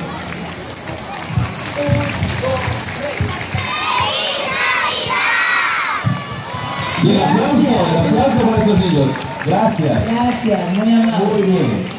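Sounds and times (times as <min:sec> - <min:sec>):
crowd noise: 0:00.0 - 0:11.9
children cheering and shouting: 0:03.4 - 0:08.6
man speaking: 0:07.0 - 0:11.9.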